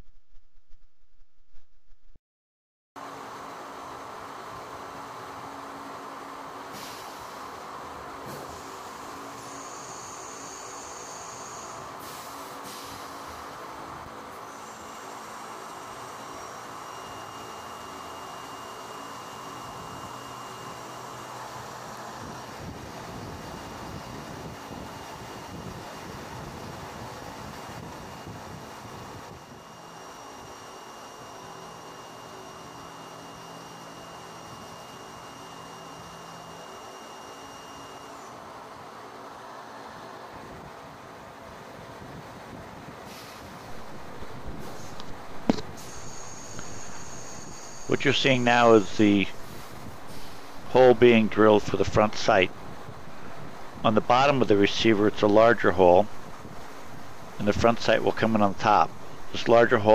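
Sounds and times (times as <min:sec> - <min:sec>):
thin high whine: 0:08.3 - 0:13.5, 0:14.3 - 0:24.4, 0:29.2 - 0:38.4, 0:43.2 - 0:59.9
coolant spray hiss: 0:43.1 - 0:48.5, 0:49.2 - 0:50.8
milling machine noise: 0:43.6 - 0:59.9.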